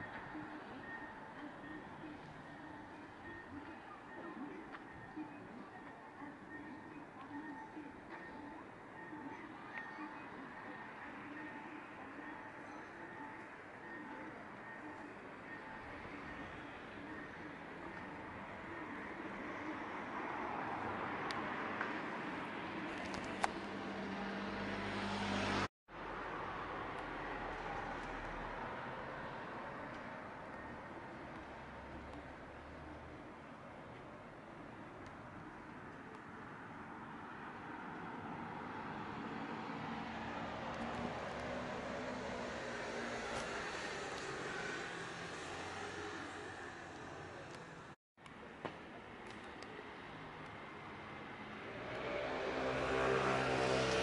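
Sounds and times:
street traffic: 0.0 - 54.0
vehicle engine hum: 15.0 - 48.0, 49.4 - 54.0.

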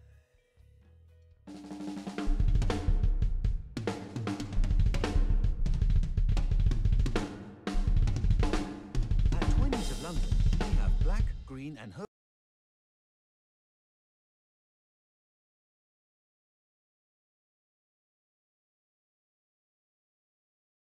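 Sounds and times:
snare drum: 1.5 - 11.5
rock drum kit playing: 1.5 - 11.6
heavy bass drum: 1.7 - 11.7
recorded guitar and bass: 9.2 - 11.5.

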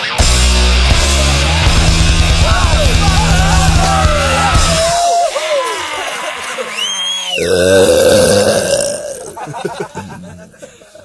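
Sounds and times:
man belching: 7.4 - 10.7.

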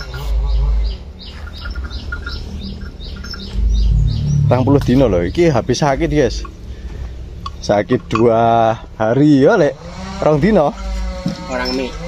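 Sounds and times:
small bird chirping: 0.0 - 6.6.

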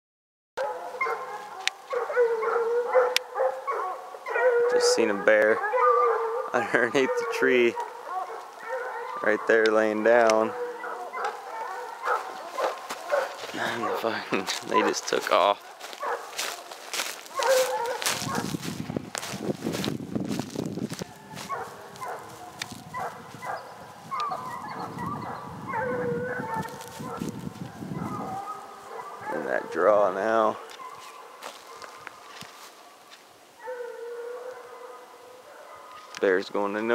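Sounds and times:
dogs howling and whining: 0.6 - 15.0, 15.8 - 18.8, 20.8 - 32.2, 33.5 - 36.1.

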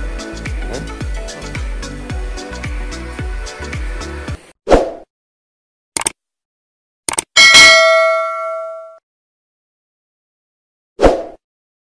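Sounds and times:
notification bell chime: 7.4 - 9.0.

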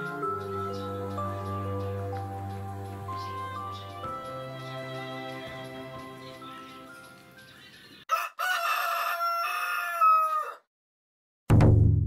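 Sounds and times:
soft background music: 0.0 - 7.8
rooster crowing: 8.1 - 10.7.

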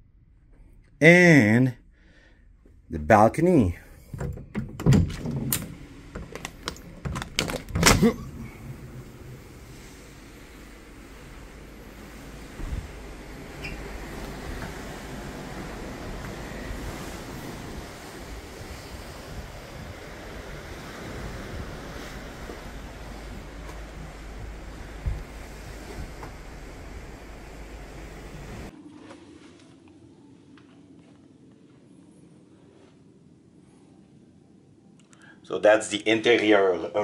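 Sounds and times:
wind buffets: 4.2 - 28.7
sea water rushing past hull: 7.7 - 29.4
wind blowing across microphone: 8.2 - 28.7.

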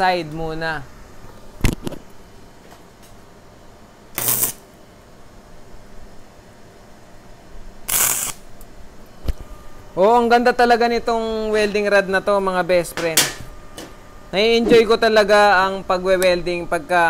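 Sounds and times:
welding arc crackle: 4.1 - 4.7, 7.8 - 8.7.

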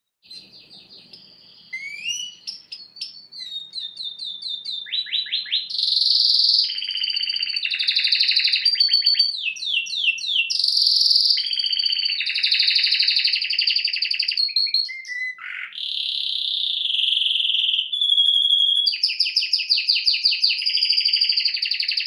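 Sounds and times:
canary singing trills: 0.2 - 22.0.

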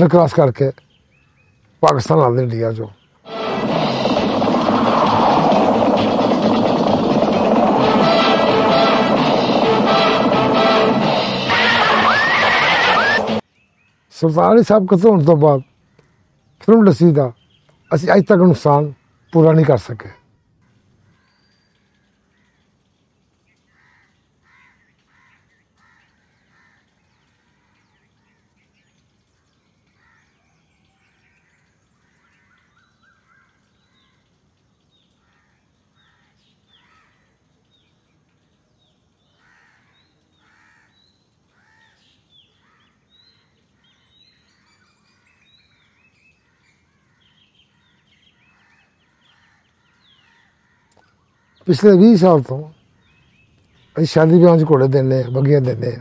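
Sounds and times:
bird calls and chirps: 0.0 - 3.3, 13.0 - 56.0
faint outdoor ambience: 0.0 - 56.0.

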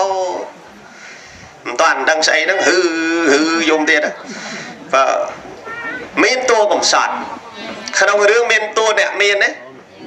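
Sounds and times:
man preaching: 0.0 - 0.6, 1.6 - 4.2, 4.9 - 9.6
high-pitched meow-like cry: 5.6 - 6.2.

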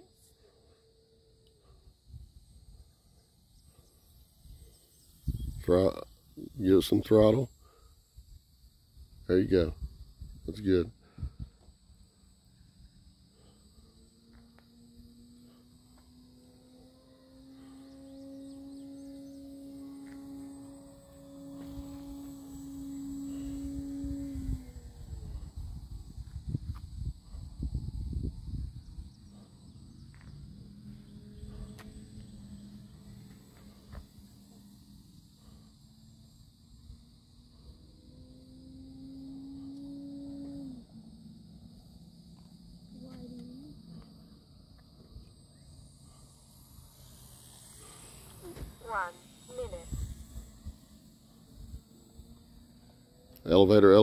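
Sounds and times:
crickets chirping: 0.0 - 54.0
electric motor and propeller hum: 0.0 - 54.0
wind rumble on microphone: 5.2 - 6.5, 9.0 - 11.6, 21.7 - 34.2, 48.5 - 50.9.

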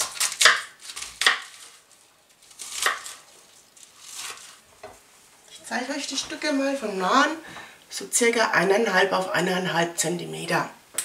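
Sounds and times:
knife cutting cabbage on board: 0.0 - 1.8, 2.4 - 3.2, 3.9 - 4.6.

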